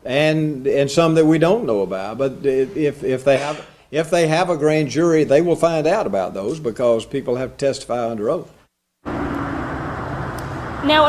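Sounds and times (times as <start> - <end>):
road traffic noise: 9.0 - 11.0.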